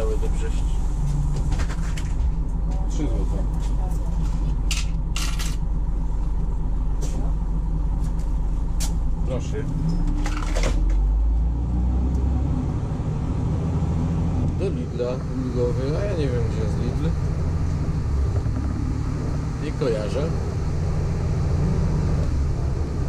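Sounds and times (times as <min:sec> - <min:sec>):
diesel bus engine: 0:00.0 - 0:23.0.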